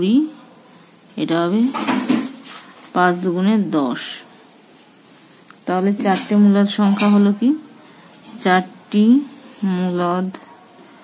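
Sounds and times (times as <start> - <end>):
woman speaking: 0.0 - 0.4, 1.1 - 2.0, 2.8 - 4.4, 5.6 - 10.6.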